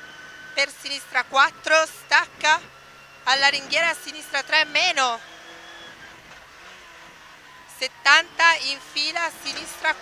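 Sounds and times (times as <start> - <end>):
car engine inside cabin: 0.0 - 10.0.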